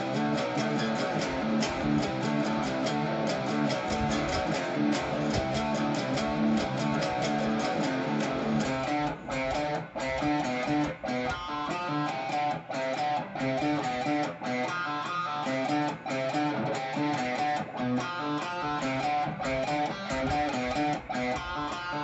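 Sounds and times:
electric guitar power-chord riff: 0.0 - 22.0.

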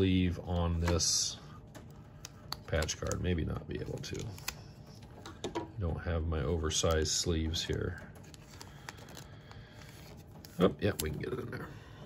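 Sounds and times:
card handling ticks: 1.7 - 5.1.

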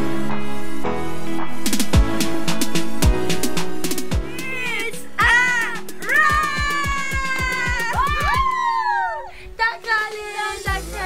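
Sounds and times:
music with fast beat: 1.7 - 8.8, 9.8 - 11.0.

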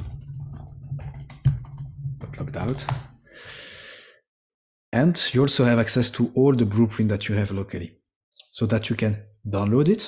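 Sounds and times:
person breathing out: 3.2 - 4.2.

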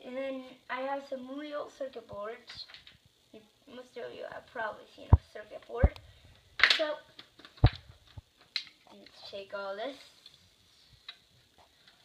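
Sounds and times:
circuit boards clicking and tapping: 5.8 - 8.8.

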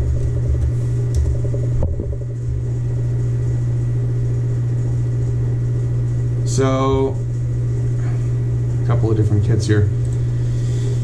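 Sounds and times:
loud steady low hum: 0.0 - 11.0.

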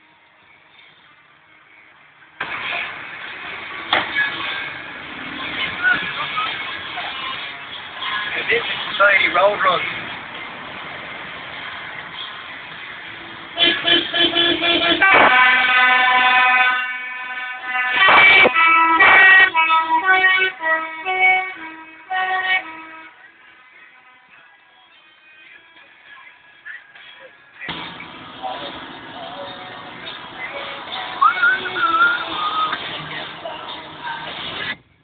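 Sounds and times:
musical vehicle horn playing a tune: 13.6 - 24.4.

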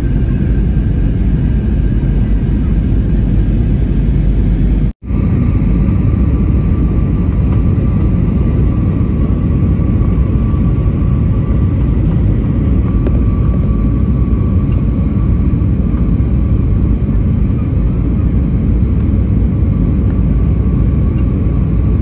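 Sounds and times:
jet engine and airflow rumble: 0.0 - 22.0.

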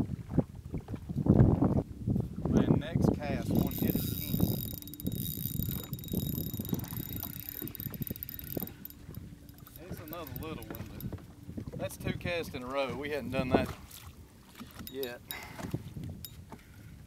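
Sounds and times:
water: 0.0 - 17.0
wind: 0.0 - 17.0
fishing reel gears ticking and whirring: 3.3 - 11.2, 14.7 - 16.4.

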